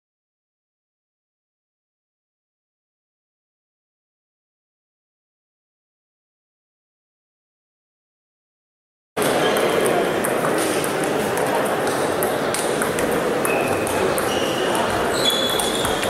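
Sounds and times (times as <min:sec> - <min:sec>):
murmur of voices: 0:09.2 - 0:16.0
table tennis balls ticking: 0:09.2 - 0:16.0.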